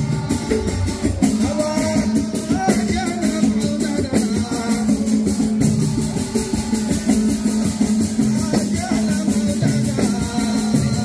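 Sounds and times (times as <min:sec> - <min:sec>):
music with steady beat and bass: 0:00.0 - 0:11.0.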